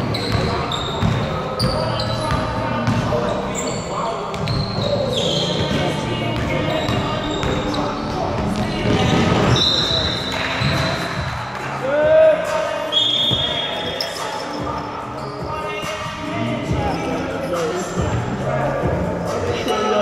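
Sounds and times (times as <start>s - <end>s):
high shoe squeaks: 0.0s - 11.2s, 12.8s - 18.0s.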